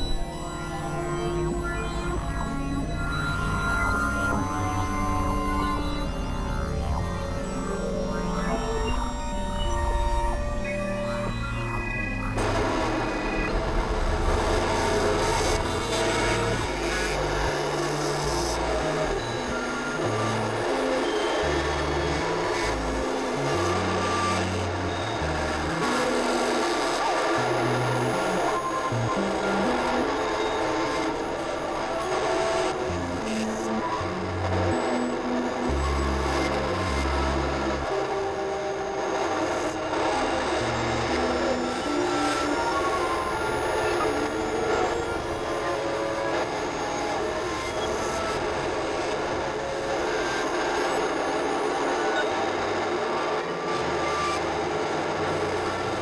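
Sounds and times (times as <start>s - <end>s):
noisy synthesizer drone: 0.0s - 56.0s.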